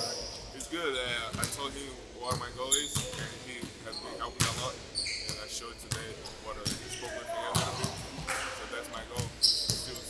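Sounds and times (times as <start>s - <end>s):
basketballs bouncing on gym floor: 4.4s - 4.7s, 5.3s - 8.3s, 9.1s - 10.0s.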